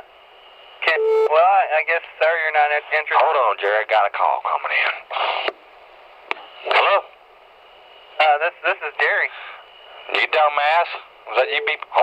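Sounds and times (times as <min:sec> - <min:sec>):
faint telephone line hiss: 0:07.5 - 0:12.0.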